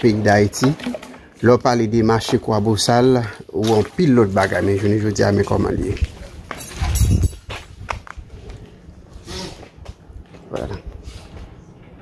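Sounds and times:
footsteps on pavement: 0:04.4 - 0:12.0.

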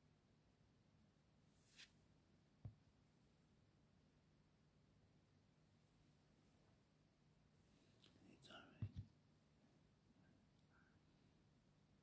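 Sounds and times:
faint whispering: 0:07.8 - 0:09.1, 0:10.1 - 0:11.4.

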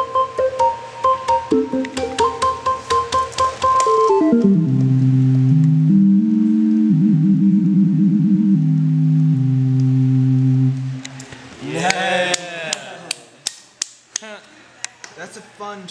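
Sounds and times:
handheld synthesizer low notes: 0:04.3 - 0:11.1.

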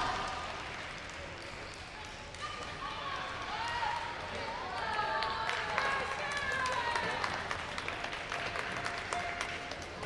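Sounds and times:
sharp claps: 0:05.2 - 0:10.0.

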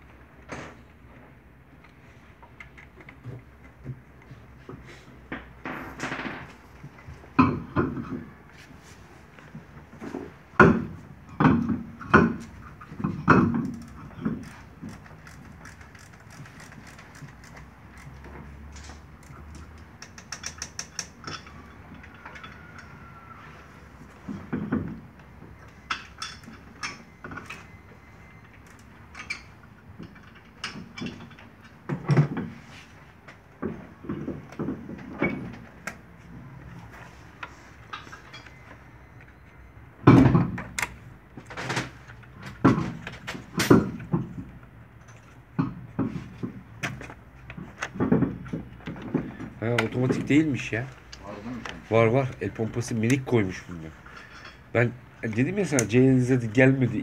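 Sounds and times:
car wheel knocks and clunks: 0:10.2 - 0:14.4, 0:45.6 - 0:49.6.

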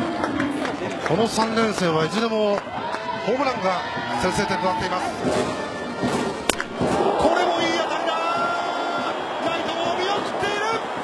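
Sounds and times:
crowd cheering: 0:00.0 - 0:11.0
bat cracking baseball: 0:05.2 - 0:09.2.

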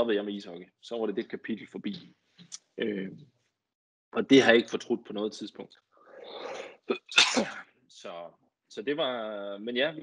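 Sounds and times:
man sneezing: 0:06.9 - 0:07.6.

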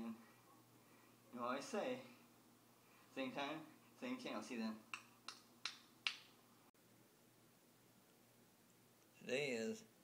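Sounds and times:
finger snaps: 0:04.9 - 0:06.3.

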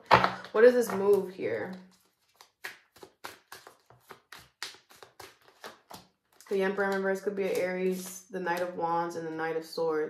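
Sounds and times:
cards shuffled by hand: 0:00.9 - 0:08.7.

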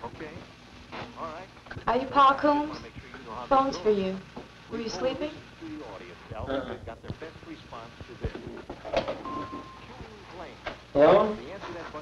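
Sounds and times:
low voices murmuring: 0:04.8 - 0:12.0
brief steady tone: 0:09.2 - 0:09.9.

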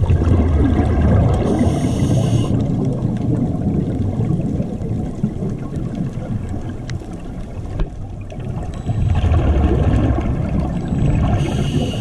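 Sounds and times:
muffled underwater water rumble: 0:00.0 - 0:12.0.

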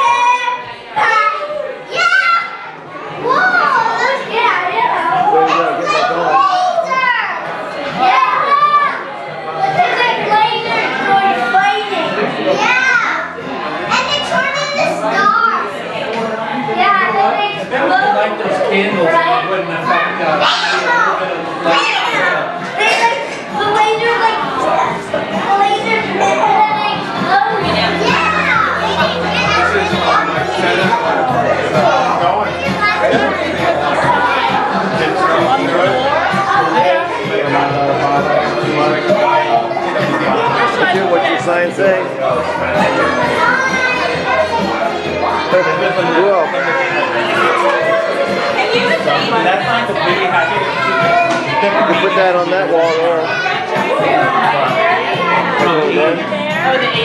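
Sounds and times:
children calling and shouting: 0:00.0 - 0:57.0.

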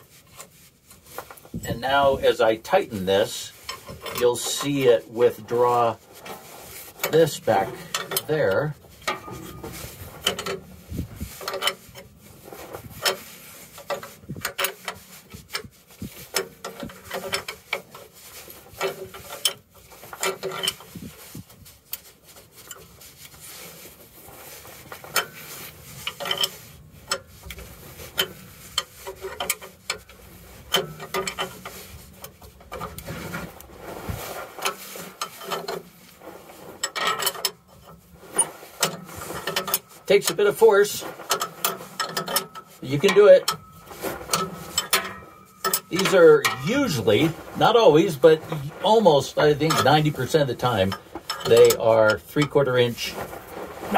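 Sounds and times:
wrench clicking and scraping metal: 0:02.6 - 0:33.7, 0:34.4 - 0:53.9.

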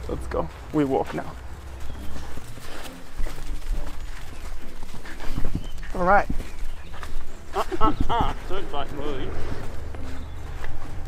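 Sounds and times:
hooves and footsteps on sand: 0:00.0 - 0:11.0
low rumble: 0:08.3 - 0:11.0.

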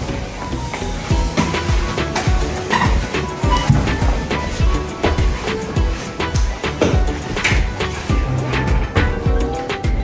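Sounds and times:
music with sliding bass beat: 0:00.0 - 0:10.0.

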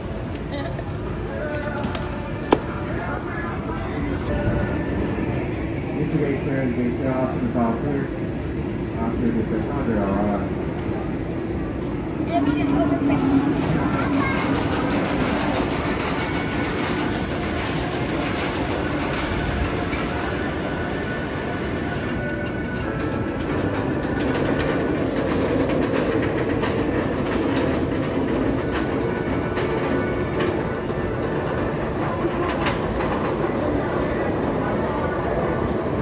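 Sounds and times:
roller coaster wheels clattering: 0:00.0 - 0:36.0.

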